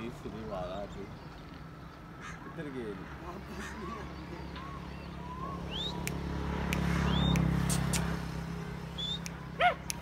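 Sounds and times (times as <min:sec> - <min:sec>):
small bird chirping: 0:03.4 - 0:10.0.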